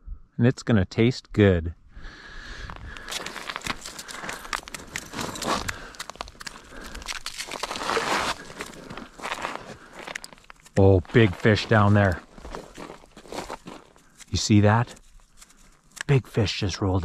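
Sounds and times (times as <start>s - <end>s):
boots crunching on snowy ice: 2.7s - 14.8s
fishing gear clicks: 2.8s - 10.8s.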